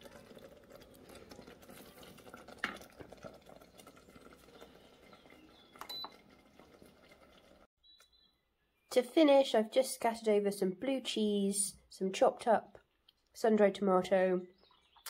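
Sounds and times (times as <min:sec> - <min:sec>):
wooden spoon stirring thick sauce: 0:00.0 - 0:05.7.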